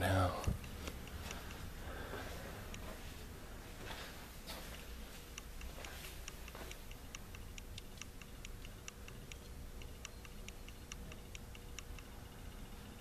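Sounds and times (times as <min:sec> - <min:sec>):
rapid light ticking: 0:00.0 - 0:02.9, 0:04.8 - 0:13.0
faint steady hum: 0:00.0 - 0:13.0.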